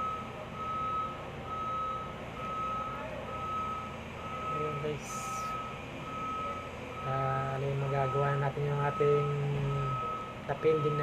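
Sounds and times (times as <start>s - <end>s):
vehicle reversing alarm beeping: 0.0s - 11.0s.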